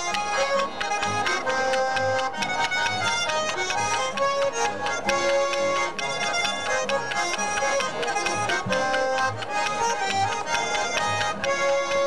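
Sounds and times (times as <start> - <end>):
button accordions playing polka: 0.0 - 12.0
guitar: 0.0 - 12.0.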